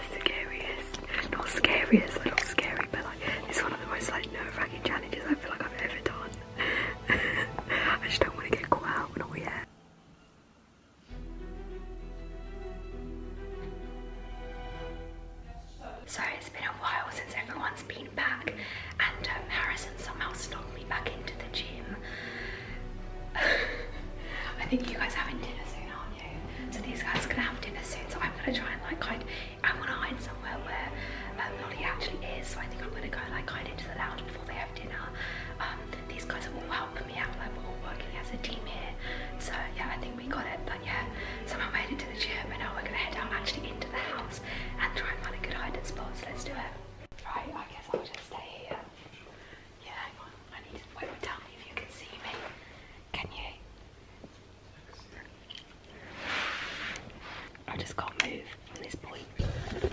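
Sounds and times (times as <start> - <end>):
woman whispering: 0.0 - 6.5, 7.6 - 9.7, 15.8 - 22.0, 24.6 - 53.7, 57.6 - 59.4.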